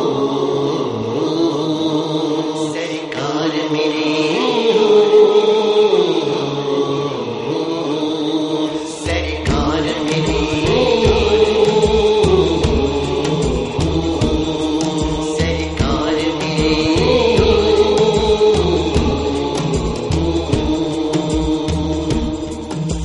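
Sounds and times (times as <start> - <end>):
sustained vocal chant: 0.0 - 23.0
low regular beat: 9.5 - 23.0.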